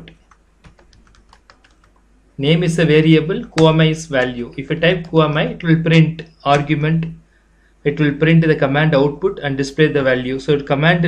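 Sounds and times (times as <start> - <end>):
computer keyboard key clicks: 0.1 - 2.0.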